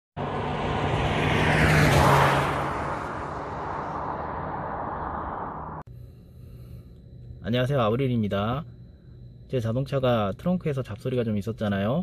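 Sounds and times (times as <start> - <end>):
car driving past: 0.2 - 5.8.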